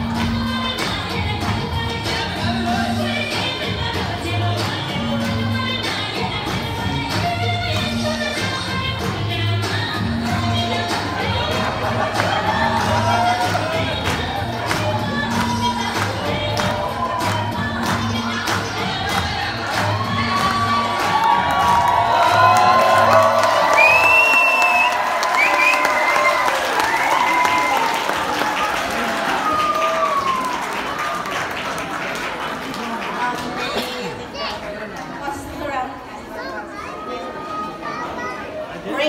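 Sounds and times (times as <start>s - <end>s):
group singing: 0.0s - 22.5s
audience cheering and applauding: 10.4s - 34.5s.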